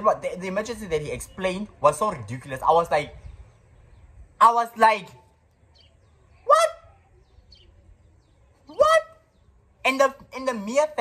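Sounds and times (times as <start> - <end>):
person making high exclamations: 6.4 - 6.9.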